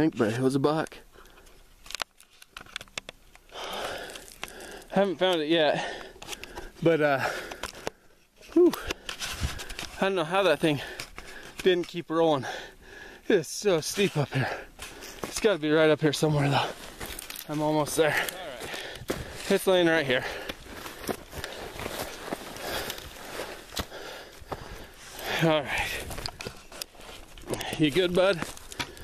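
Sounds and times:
heavy breathing: 3.5 - 5.0, 5.6 - 13.4, 14.0 - 15.4, 16.2 - 29.0
footsteps crunching on dirt and brush: 14.8 - 29.0.

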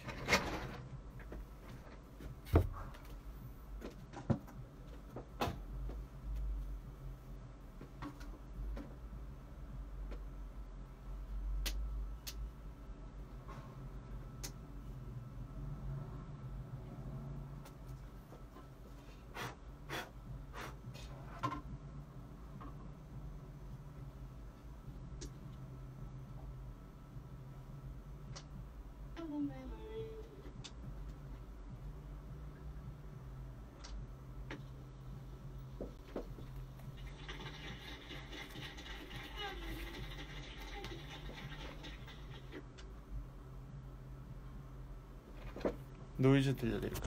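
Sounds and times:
vinyl record surface noise: 0.0 - 47.0
playback system hum: 20.2 - 38.2
voice from record: 46.2 - 47.0.

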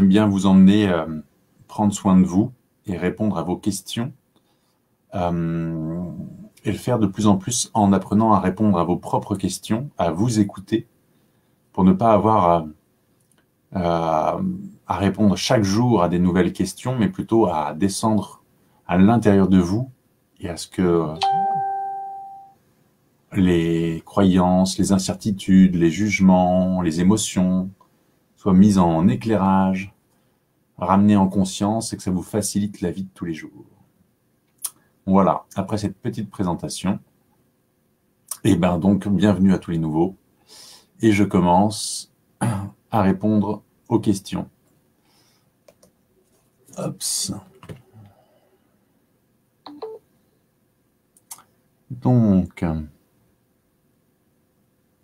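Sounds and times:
chime ding: 21.2 - 22.6
two-note electronic beeps: 21.2 - 22.6.

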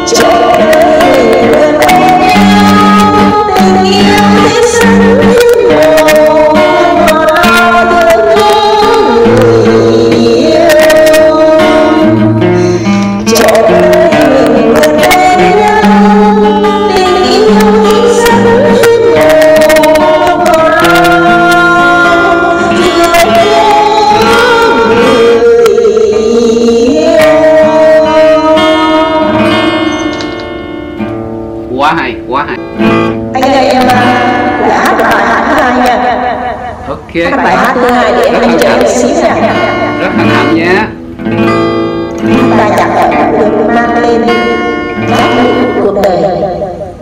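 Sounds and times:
woman singing: 0.0 - 30.4, 33.3 - 40.5, 42.2 - 47.0
acoustic guitar strummed and picked: 0.0 - 47.0
person speaking: 31.7 - 32.8, 36.9 - 41.0.

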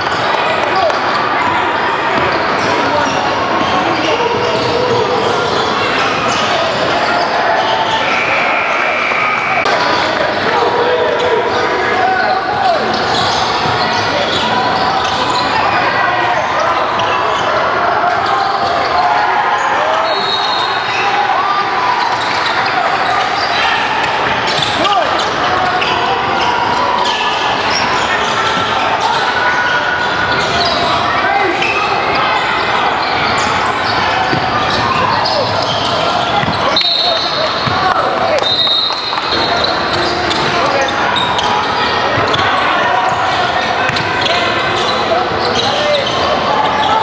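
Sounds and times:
sneakers squeaking: 0.0 - 47.0
voices talking and calling out: 0.0 - 47.0.

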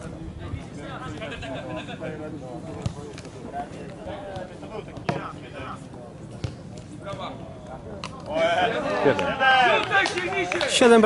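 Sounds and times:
players shouting: 8.2 - 10.7.

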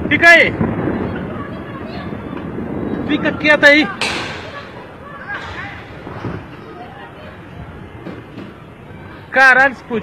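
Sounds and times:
faint voices: 0.0 - 10.0
fire burning rumble: 0.0 - 10.0.

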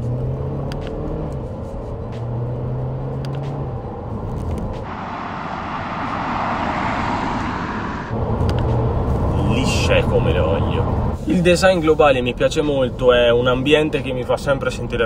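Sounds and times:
car engine humming: 0.0 - 11.2
car rushing on road: 0.0 - 11.2
road rumble: 0.0 - 15.0.

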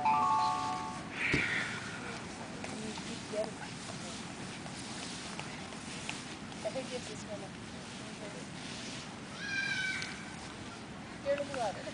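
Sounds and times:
low background murmur: 0.4 - 11.9
high-pitched cry: 9.3 - 10.2.

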